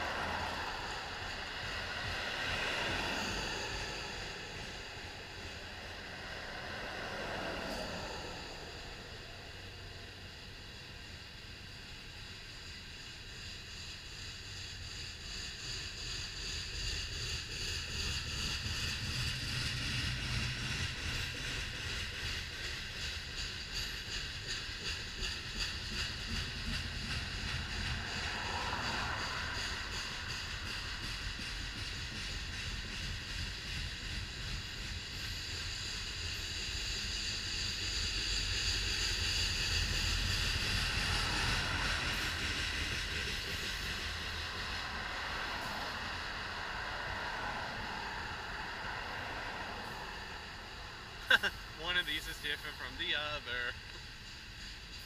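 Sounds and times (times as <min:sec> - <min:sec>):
freight train wheels rumbling: 0:00.0 - 0:55.0
high whine of wheels: 0:00.0 - 0:55.0
road traffic: 0:00.0 - 0:55.0.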